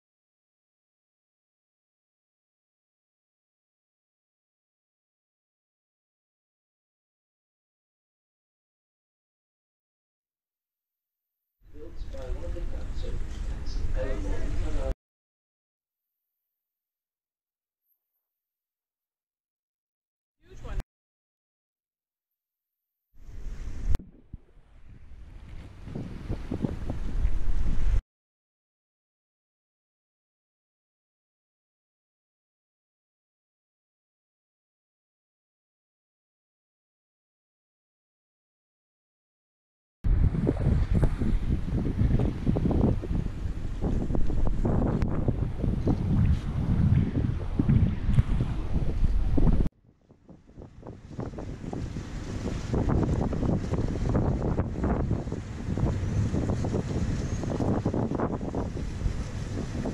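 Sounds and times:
wind buffeting microphone: 23.2 - 28.0, 40.1 - 59.9.

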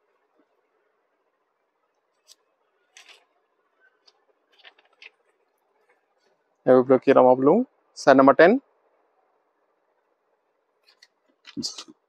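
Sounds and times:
light paper crinkles: 2.1 - 6.4
fabric and paper rustling: 4.0 - 6.3.

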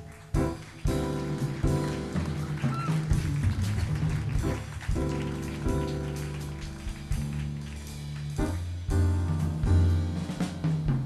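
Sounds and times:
light drums: 0.0 - 11.0
piano chords: 0.0 - 11.0
upright bass: 0.0 - 11.0.

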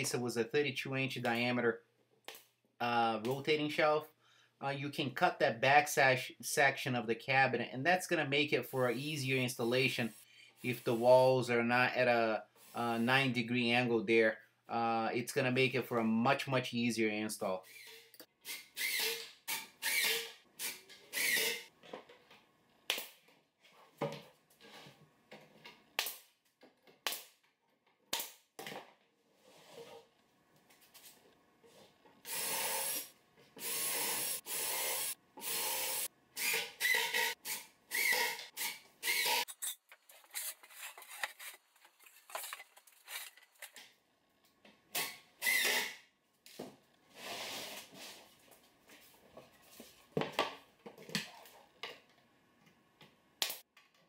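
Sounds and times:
cordless drill driving screws: 21.1 - 21.6, 32.3 - 39.4, 45.0 - 46.0.

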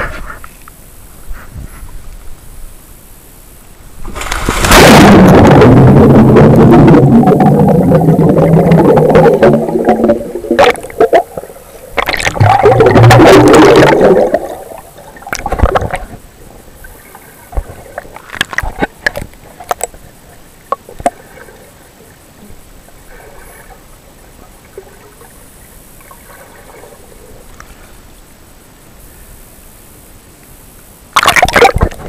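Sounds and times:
camera splashing into water: 4.0 - 5.1, 31.2 - 32.0
muffled underwater bubbling: 4.4 - 21.8.

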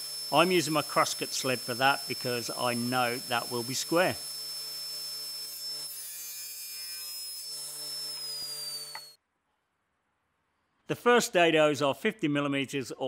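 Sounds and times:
saw blade cutting plywood: 0.0 - 9.2
table saw whining: 0.0 - 9.2.

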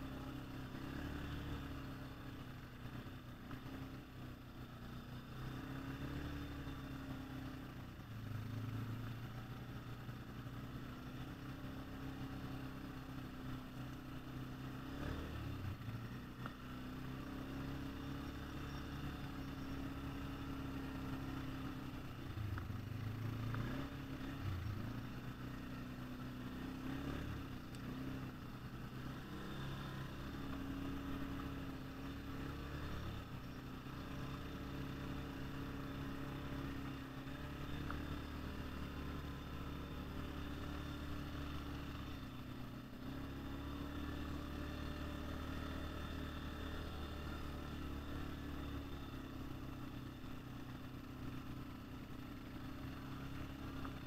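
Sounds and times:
quad bike engine revving: 0.0 - 54.0.

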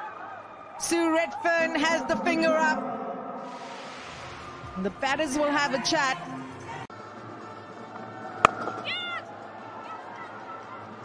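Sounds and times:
stadium background: 0.0 - 11.0
cricket bat striking ball: 8.4 - 8.9.

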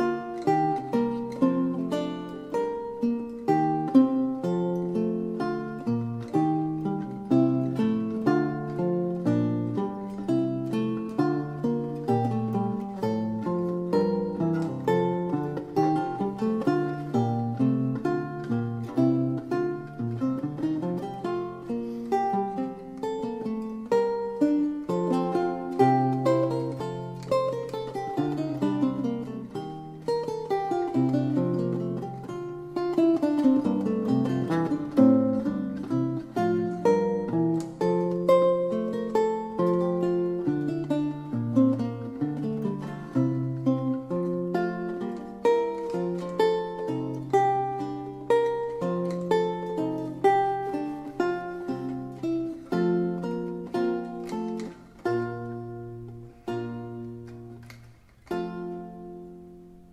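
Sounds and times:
solo lute music: 0.0 - 59.9.

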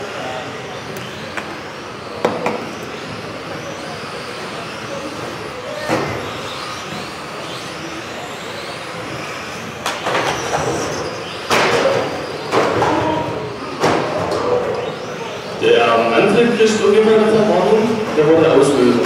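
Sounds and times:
model car motors whining: 0.0 - 19.0.

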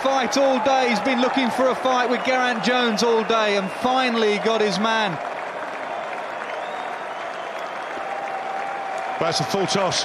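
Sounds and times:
large crowd applauding: 0.0 - 10.0.

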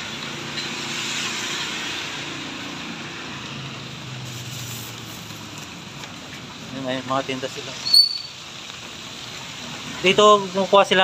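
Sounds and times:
high-pitched chirp: 7.8 - 8.4.

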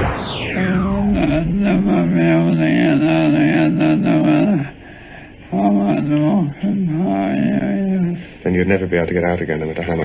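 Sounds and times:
chant-like vocal drone: 0.0 - 8.3.

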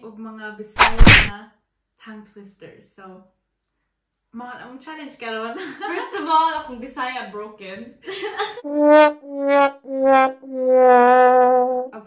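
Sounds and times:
sad trombone notes: 8.6 - 12.0.

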